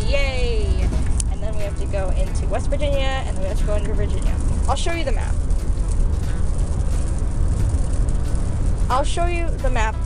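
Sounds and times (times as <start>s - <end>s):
car cabin rumble: 0.0s - 10.0s
tyres hissing on wet road: 0.0s - 10.0s.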